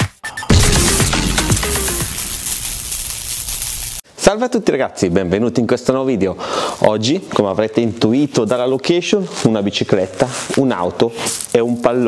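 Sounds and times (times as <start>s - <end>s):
steady rushing hiss: 1.0s - 4.0s.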